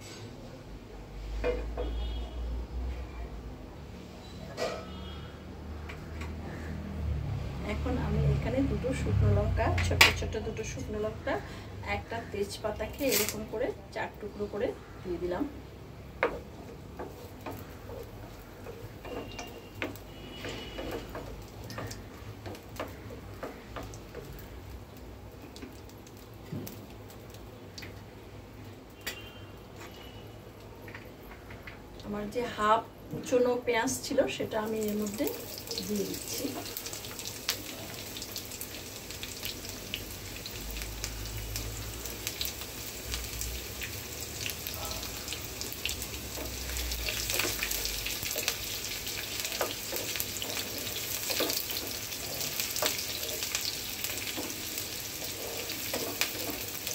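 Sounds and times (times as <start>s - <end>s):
spices popping in hot oil: 7.7s - 11.5s, 12.4s - 56.9s.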